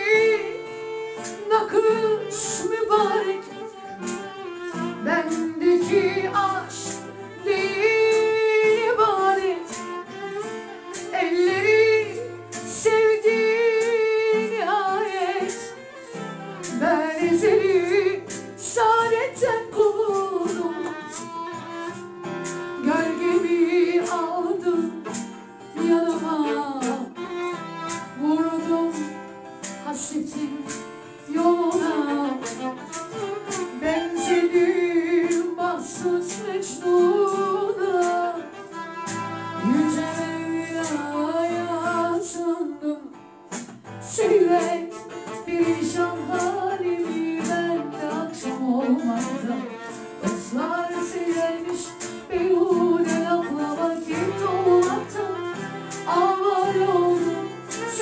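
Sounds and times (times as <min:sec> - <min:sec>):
woman singing into a microphone: 0:00.0 - 0:22.0, 0:22.7 - 0:58.0
acoustic guitar: 0:00.0 - 0:58.0
violin: 0:00.0 - 0:58.0.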